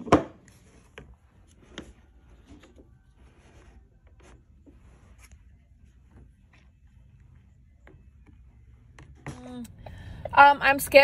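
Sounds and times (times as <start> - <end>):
low steady hum: 0.5 - 11.0
faint rubbing: 1.4 - 7.8.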